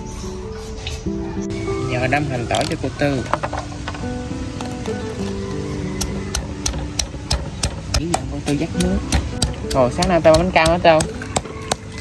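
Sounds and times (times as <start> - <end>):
background music with held notes: 0.0 - 12.0
pestle pounding in stone mortar: 6.0 - 12.0.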